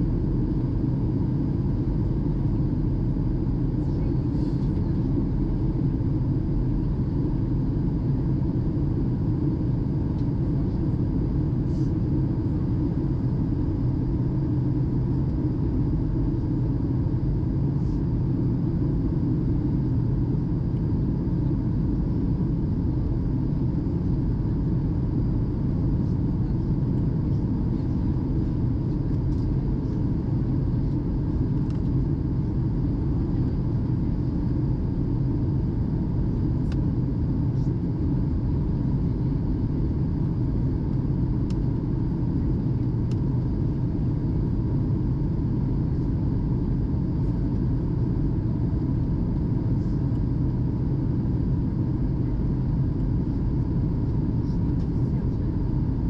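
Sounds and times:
airliner engine rumble: 0:00.0 - 0:56.0
faint steady hum: 0:00.0 - 0:56.0.

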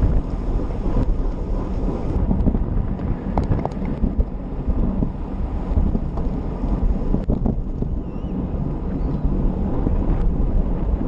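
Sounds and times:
bicycle road rumble: 0:00.0 - 0:11.0
wind buffeting microphone: 0:00.0 - 0:11.0.

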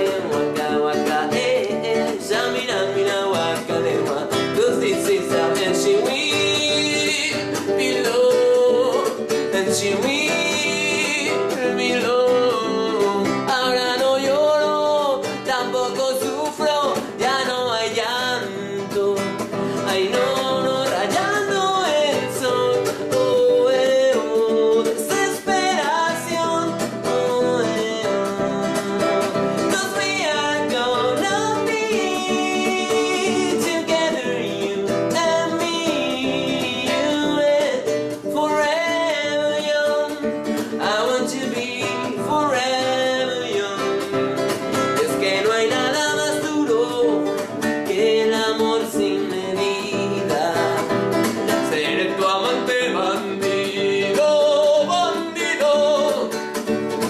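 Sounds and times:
man singing: 0:00.0 - 0:57.0
nylon-string guitar strumming: 0:00.0 - 0:57.0.

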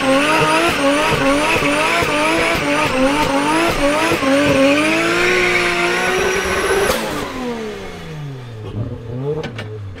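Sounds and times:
car engine revving: 0:00.0 - 0:10.0.

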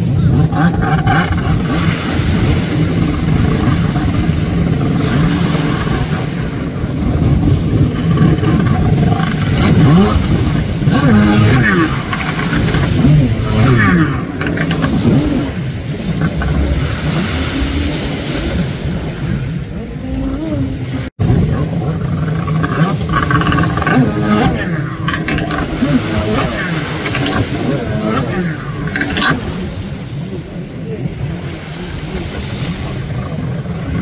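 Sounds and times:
jet ski engines revving: 0:00.0 - 0:34.0.

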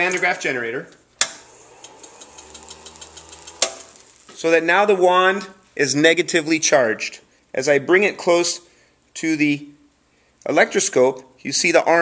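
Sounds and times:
motor humming: 0:01.2 - 0:04.3
light irregular ticks: 0:01.8 - 0:04.2.

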